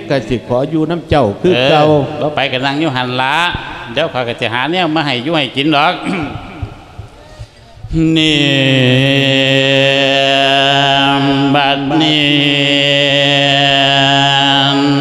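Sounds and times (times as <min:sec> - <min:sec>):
man chanting long held notes: 0:07.2 - 0:15.0.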